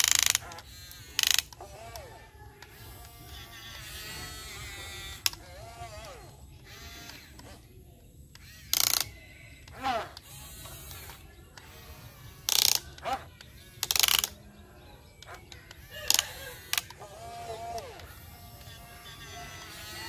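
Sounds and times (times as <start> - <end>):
toy excavator motors whirring: 0.0 - 20.0.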